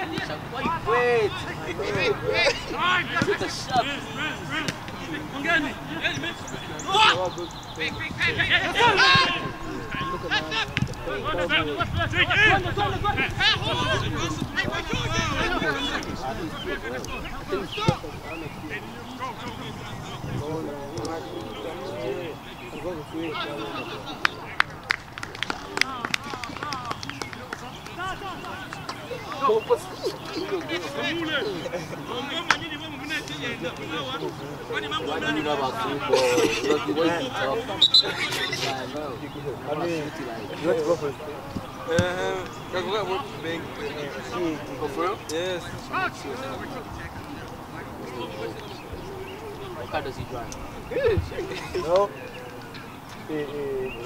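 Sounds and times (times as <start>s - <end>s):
distant calls of people: 0.0s - 54.0s
voices shouting: 0.0s - 54.0s.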